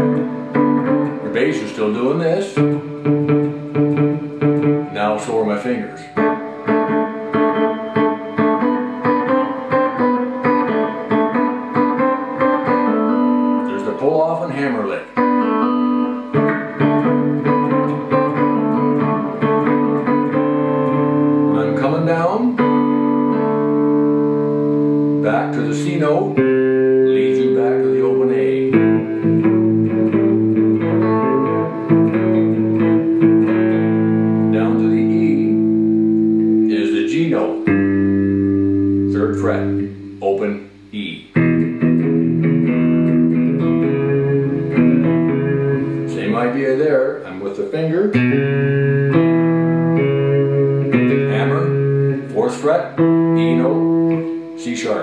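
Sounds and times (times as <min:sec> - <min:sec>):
fingerstyle electric guitar blues: 0:00.0 - 0:55.0.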